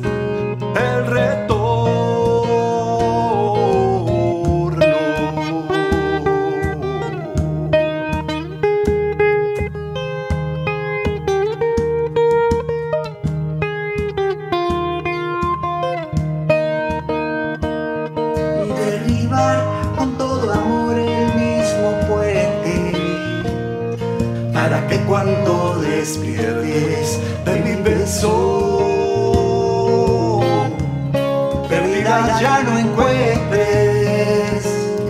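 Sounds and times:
acoustic guitar playing: 0:00.0 - 0:35.0.

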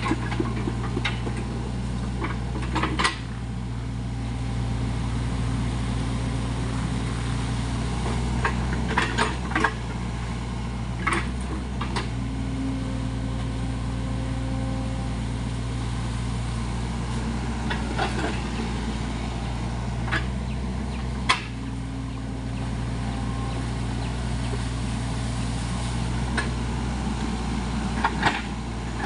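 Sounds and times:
excavator diesel engine running: 0:00.0 - 0:29.0.

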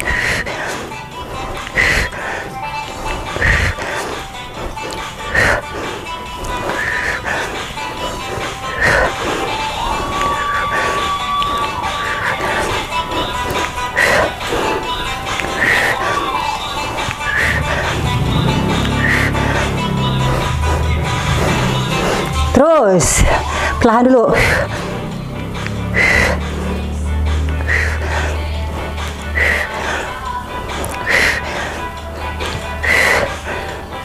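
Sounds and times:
background music with beat: 0:00.0 - 0:34.0.

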